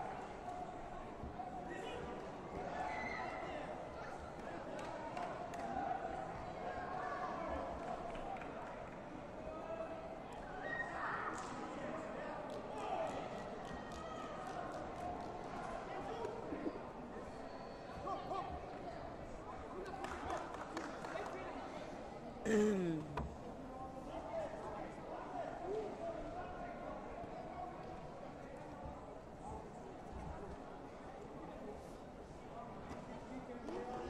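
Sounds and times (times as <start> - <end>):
murmur of many voices: 0.0 - 34.0.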